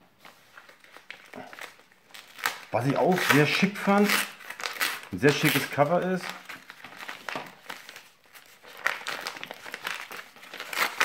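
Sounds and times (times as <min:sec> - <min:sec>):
padded envelope crinkling: 0:00.2 - 0:11.0.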